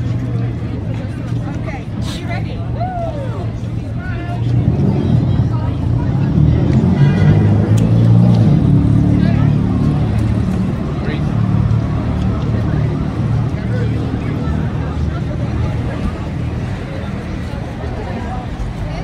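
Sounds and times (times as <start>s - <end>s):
people chattering: 0.0s - 19.0s
road traffic rumble: 0.0s - 19.0s.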